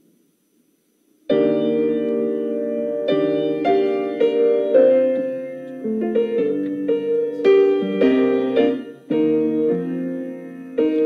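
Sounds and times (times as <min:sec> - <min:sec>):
slow piano chords: 0:01.3 - 0:11.0.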